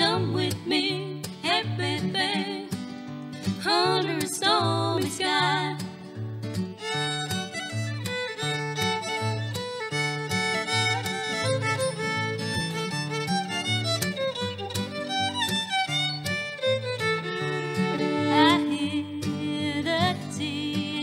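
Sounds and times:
acoustic guitar strumming: 0:00.0 - 0:21.0
fiddle playing lively melody: 0:06.8 - 0:19.2.

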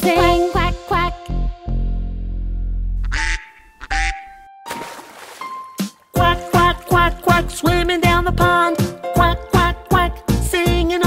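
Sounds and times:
cartoon duck quacks: 0:03.0 - 0:04.4
water splash: 0:04.7 - 0:06.8.

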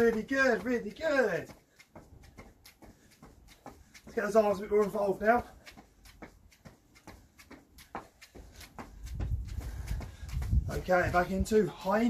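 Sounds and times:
footsteps on stone slabs: 0:00.0 - 0:12.0.

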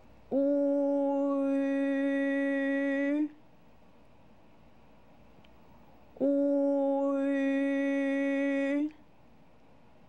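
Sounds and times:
person holding a long vowel: 0:00.3 - 0:03.4, 0:06.2 - 0:09.0.

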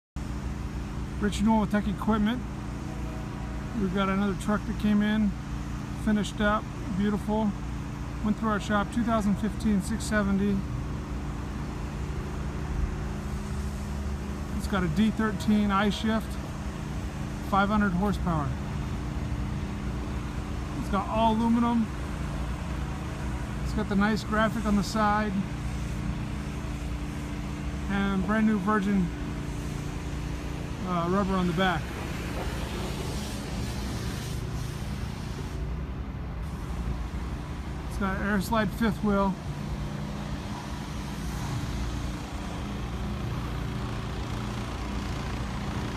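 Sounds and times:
diesel truck engine idling: 0:00.2 - 0:45.9.

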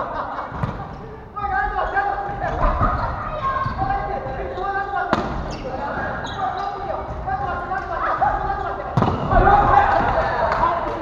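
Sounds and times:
players calling out: 0:00.0 - 0:11.0.

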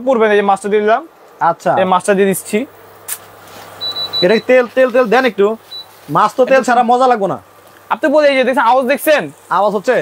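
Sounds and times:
man talking: 0:00.0 - 0:02.8, 0:04.2 - 0:10.0
short high-pitched beep: 0:03.8 - 0:04.5, 0:05.7 - 0:05.9.

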